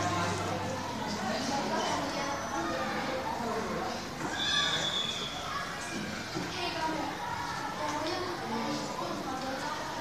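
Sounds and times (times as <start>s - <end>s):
young voice squealing: 4.3s - 5.6s.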